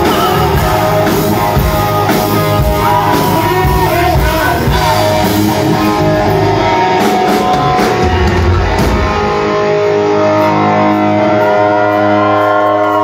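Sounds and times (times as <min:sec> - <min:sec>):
person singing: 0:00.0 - 0:08.6
electric guitar: 0:00.0 - 0:13.0
hard rock band playing live: 0:00.0 - 0:13.0.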